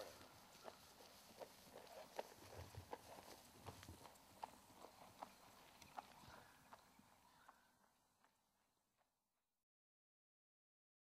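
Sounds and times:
horse hoofbeats on grass: 0.0 - 7.6.

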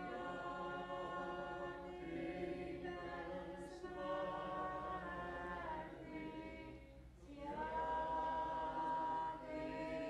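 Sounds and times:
choir singing unaccompanied: 0.0 - 10.0.

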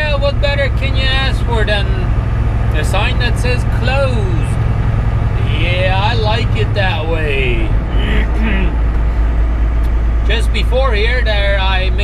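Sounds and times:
diesel engine droning: 0.0 - 12.0
tyre and road noise: 0.0 - 12.0.

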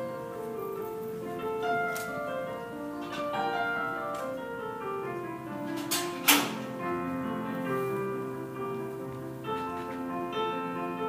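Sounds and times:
slow piano music: 0.0 - 11.0.

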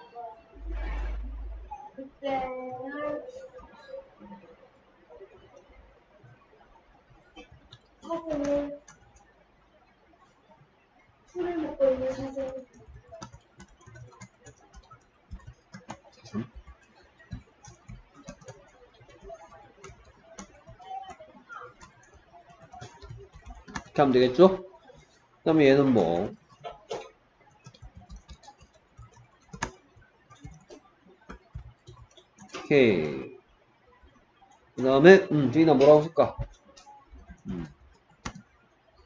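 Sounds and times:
keyboard typing: 7.1 - 9.3, 11.3 - 33.3, 34.0 - 39.0.

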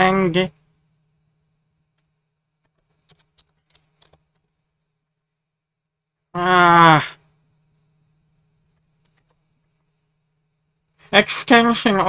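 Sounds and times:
computer keyboard typing: 2.6 - 5.3, 8.7 - 9.9.

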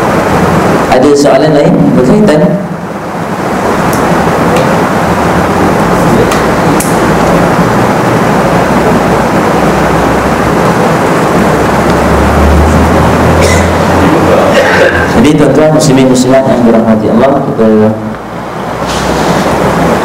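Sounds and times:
loud rushing noise: 0.0 - 20.0
low hum: 0.0 - 20.0.

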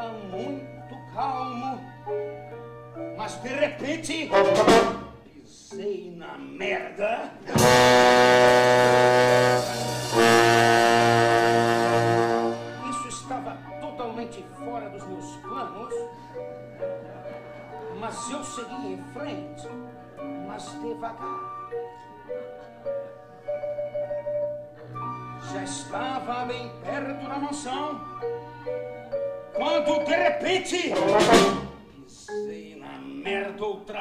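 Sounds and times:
marimba notes: 0.0 - 6.2, 7.5 - 34.0
trombone and saxophone chords: 4.2 - 5.2, 7.5 - 13.6, 28.0 - 31.9.

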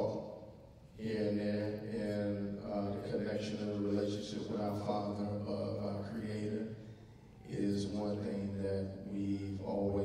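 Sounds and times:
man speaking through microphone: 0.0 - 0.3, 1.0 - 6.8, 7.4 - 10.0.

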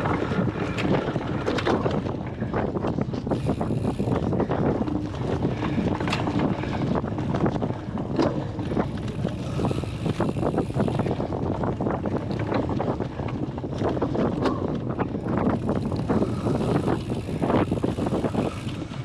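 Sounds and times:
bike rattling and clicking: 0.0 - 19.0
wind buffeting microphone: 0.0 - 19.0.

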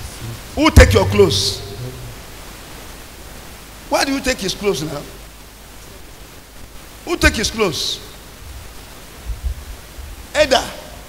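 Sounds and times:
microphone background hiss: 0.0 - 11.0
man speaking into a microphone: 0.1 - 2.2, 3.9 - 5.2, 7.0 - 8.2, 10.4 - 10.9.

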